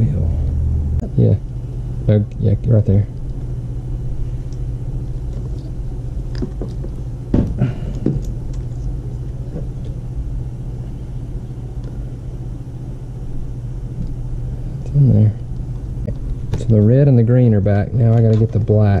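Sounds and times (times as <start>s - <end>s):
steady low hum: 0.0s - 19.0s
wire connectors clicking and rustling: 17.9s - 19.0s.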